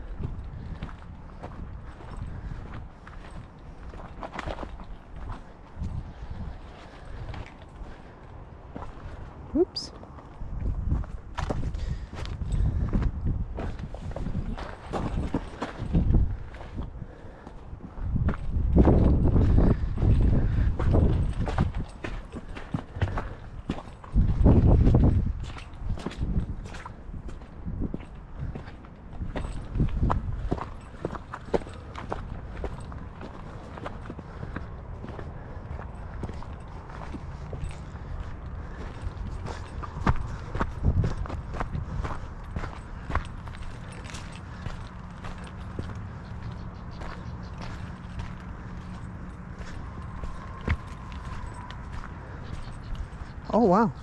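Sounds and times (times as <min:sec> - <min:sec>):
footsteps on rocky dirt trail: 0:00.0 - 0:54.0.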